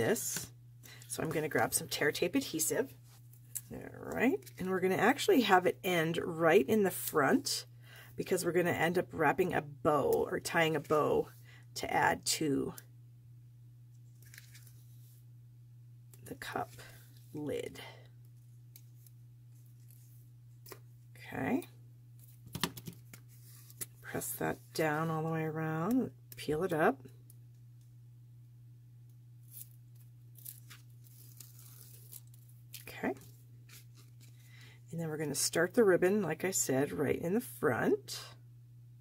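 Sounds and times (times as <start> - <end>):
low room tone hum: 0.0 - 39.0
paper rustling: 14.2 - 14.9
tape liner peeling: 29.4 - 32.8.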